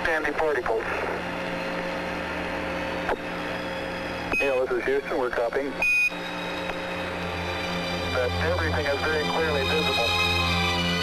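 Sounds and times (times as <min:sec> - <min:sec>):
radio static hiss: 0:00.0 - 0:01.3
low hum: 0:00.0 - 0:11.0.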